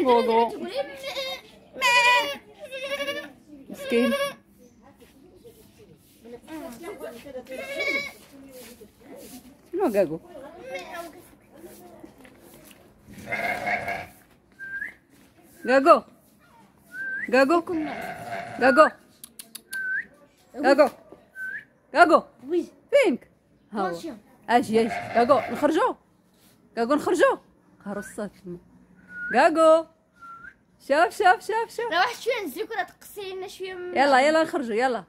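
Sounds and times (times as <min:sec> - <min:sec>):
ram bleating: 0:00.1 - 0:04.4, 0:07.6 - 0:08.2, 0:13.1 - 0:14.2, 0:17.7 - 0:18.8, 0:24.8 - 0:25.8.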